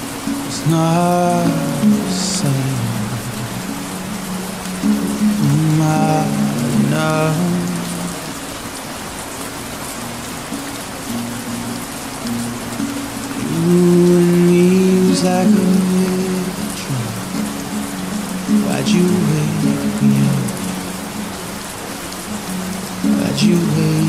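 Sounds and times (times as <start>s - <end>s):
song with sustained low notes: 0.0s - 8.6s, 10.0s - 24.0s
steady rain: 0.0s - 24.0s.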